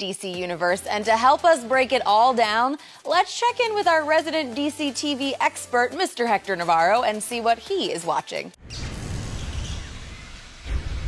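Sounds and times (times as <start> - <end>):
deep low rumble: 8.6 - 11.0.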